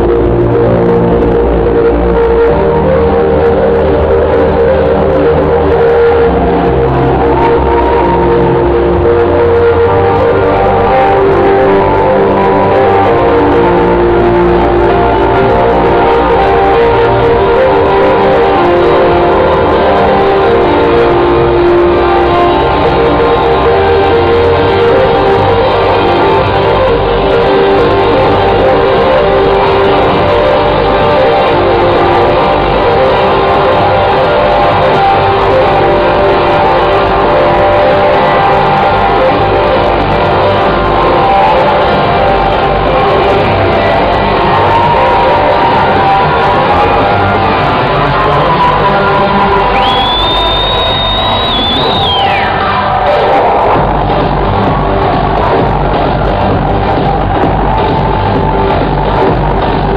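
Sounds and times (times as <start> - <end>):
trance music over sound system: 0.0 - 59.9.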